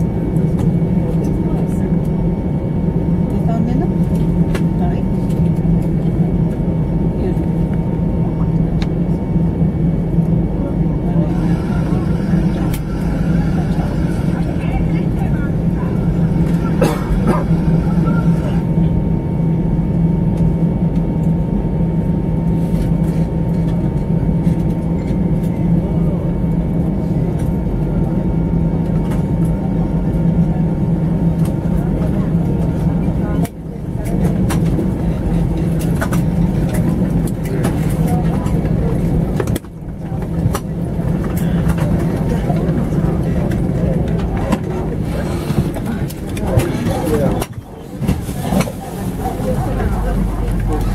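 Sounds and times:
airliner engines and cabin hum: 0:00.0 - 0:50.9.

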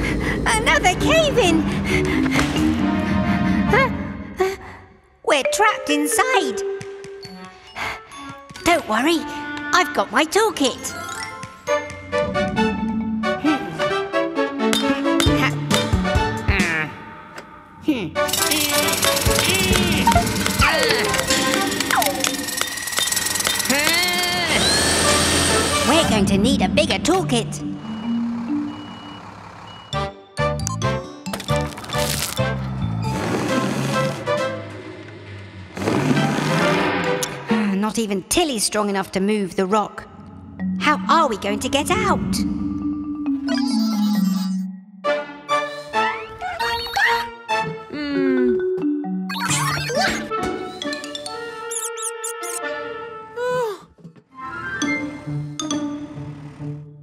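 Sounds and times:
background music: 0:00.0 - 0:22.9, 0:23.6 - 0:57.0
cartoon power drill rattle: 0:18.3 - 0:26.1
high squeaky robot chirps: 0:43.4 - 0:44.7, 0:46.2 - 0:47.3, 0:49.3 - 0:50.2, 0:51.6 - 0:52.6.

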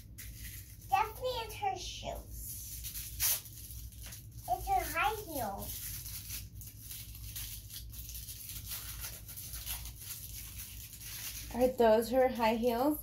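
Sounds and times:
plastic wrapper crinkling and tearing: 0:00.0 - 0:01.8, 0:02.5 - 0:12.8.

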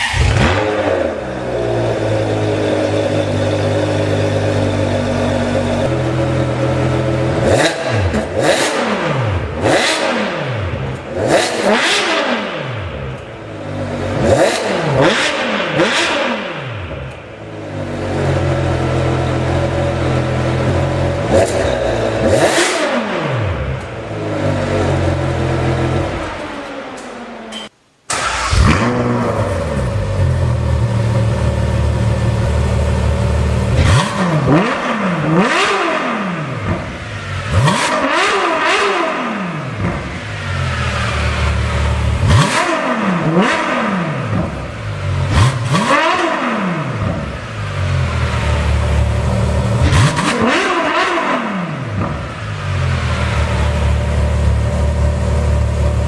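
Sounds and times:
car engine revving: 0:00.0 - 0:27.4, 0:28.1 - 0:56.0.

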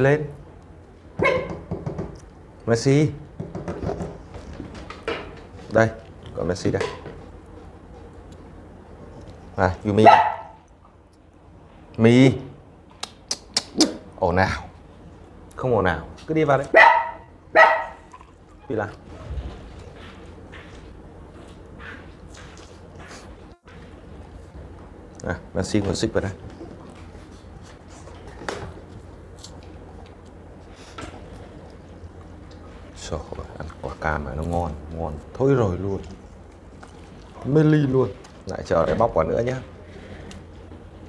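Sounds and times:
low steady hum: 0:00.0 - 0:41.0
dog barking: 0:01.2 - 0:01.7, 0:10.0 - 0:10.6, 0:16.7 - 0:18.1.

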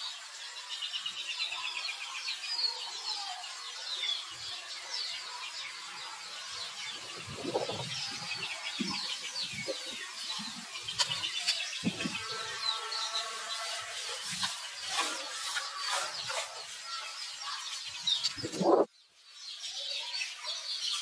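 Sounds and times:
birds chirping and trilling: 0:00.0 - 0:21.0.

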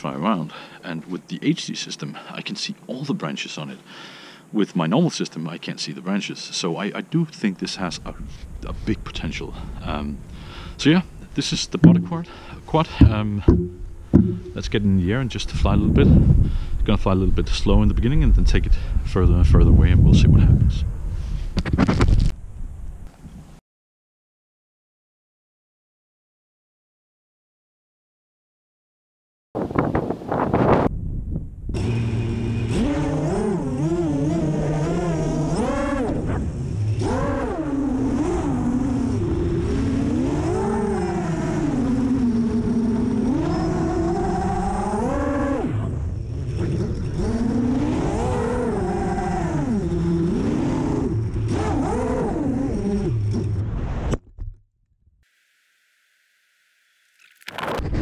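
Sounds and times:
quadcopter motors whining: 0:31.7 - 0:53.6.

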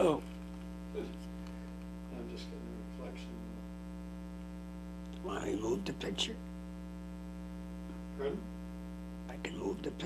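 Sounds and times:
electrical mains hum: 0:00.0 - 0:10.0
person speaking: 0:05.1 - 0:06.4, 0:09.3 - 0:10.0.

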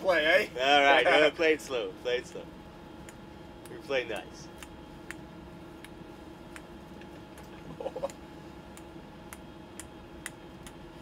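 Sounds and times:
cabin fans humming: 0:00.0 - 0:11.0.

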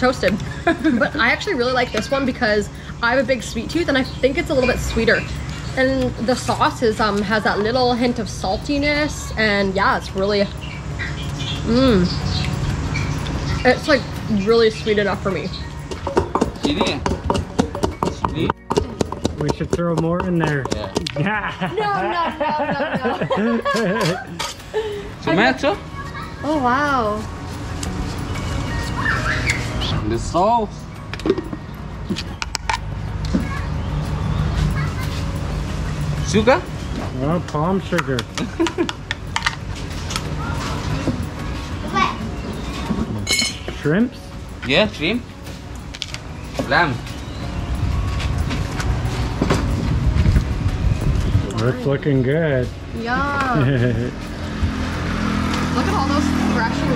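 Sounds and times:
voices: 0:00.0 - 0:39.3, 0:51.0 - 0:56.9
steady outdoor noise: 0:00.0 - 0:56.9
pestle pounding in clay mortar: 0:15.8 - 0:21.3
children chattering: 0:21.7 - 0:29.9, 0:33.1 - 0:36.2, 0:40.2 - 0:43.3, 0:55.5 - 0:56.9.

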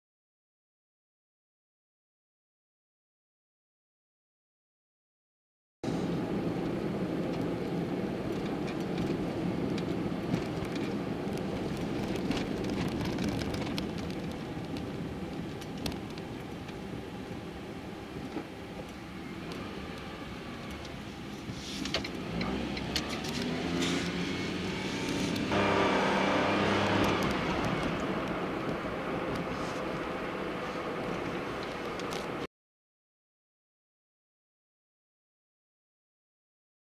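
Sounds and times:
car engine and tyre noise: 0:05.8 - 0:32.5.

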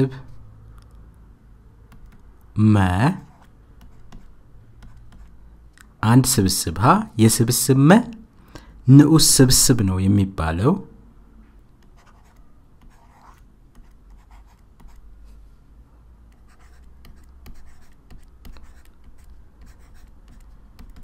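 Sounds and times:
pen scratching while writing: 0:12.0 - 0:15.0, 0:16.4 - 0:21.0.

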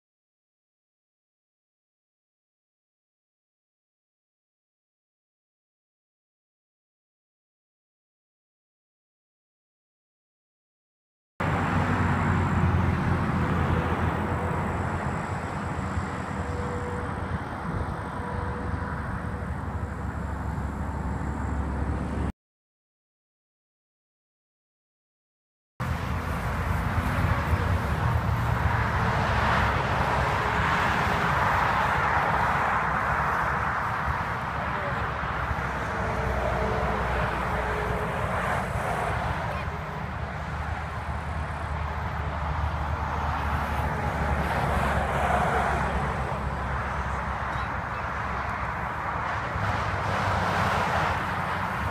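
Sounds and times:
highway traffic passing: 0:11.4 - 0:22.3, 0:25.8 - 0:51.9.

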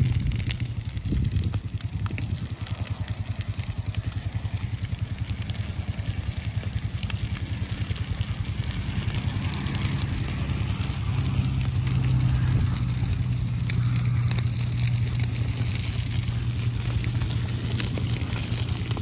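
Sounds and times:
crackle of burning grass: 0:00.0 - 0:19.0
engine running at low speed: 0:00.0 - 0:19.0.

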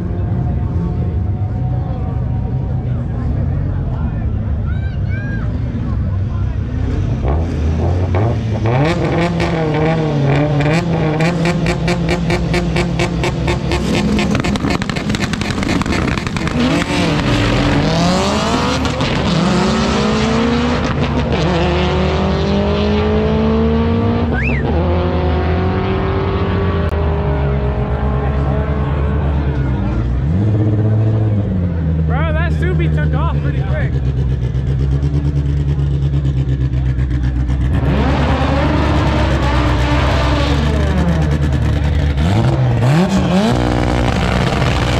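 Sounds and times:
drag car engines revving and popping: 0:05.4 - 0:44.9
car engine revving up close: 0:06.7 - 0:44.9
cars accelerating through gears: 0:06.7 - 0:44.9.

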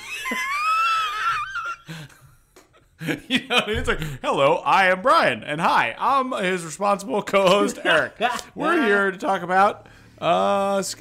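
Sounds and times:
man's high-pitched wheezing laugh: 0:00.0 - 0:02.1.

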